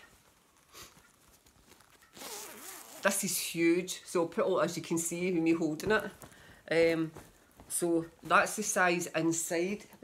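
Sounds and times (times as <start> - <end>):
zip being pulled open: 1.9 - 3.2.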